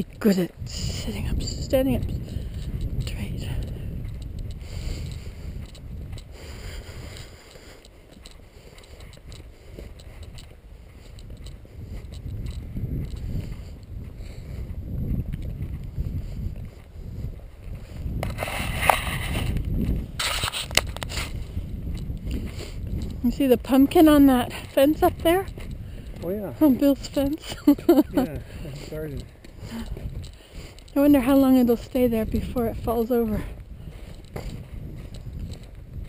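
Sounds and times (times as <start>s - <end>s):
wind rumble on microphone: 0.0s - 36.0s.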